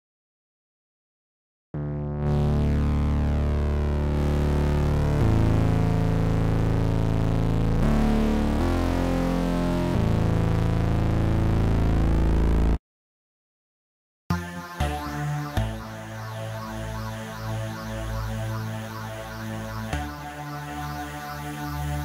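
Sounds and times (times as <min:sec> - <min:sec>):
thick sustained synthesizer chords: 0:14.3 - 0:22.0.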